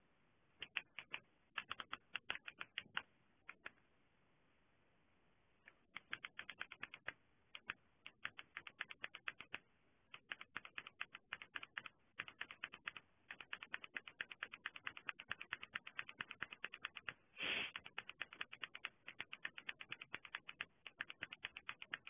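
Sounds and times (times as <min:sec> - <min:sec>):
typing on computer keyboard: 0:00.6 - 0:03.8, 0:05.8 - 0:22.0.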